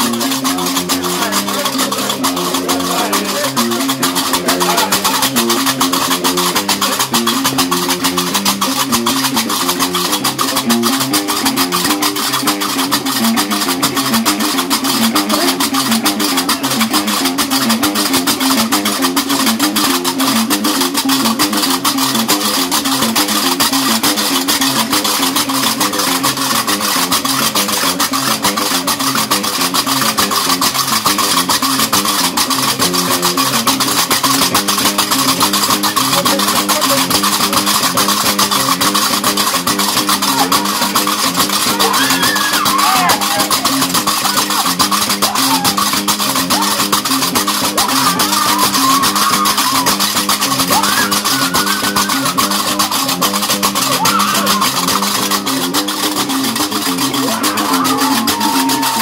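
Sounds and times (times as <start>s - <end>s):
iron castanets clattering: 0.0s - 59.0s
plucked bass lute riff: 0.0s - 59.0s.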